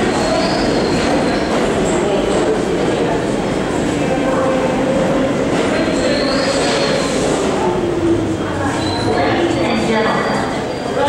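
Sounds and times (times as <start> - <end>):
high wheel squeal: 0.0 - 1.6, 5.8 - 7.2, 8.7 - 9.3
subway train wheels on rails: 0.0 - 11.0.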